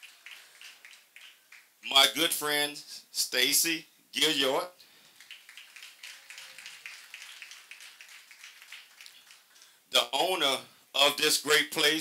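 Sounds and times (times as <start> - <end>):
audience clapping: 0.0 - 1.9, 5.0 - 9.8.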